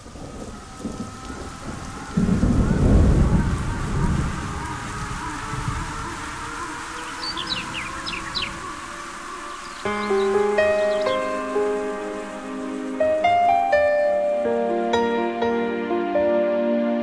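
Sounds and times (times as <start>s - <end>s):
rolling thunder: 0.0s - 8.6s
rain: 0.0s - 17.0s.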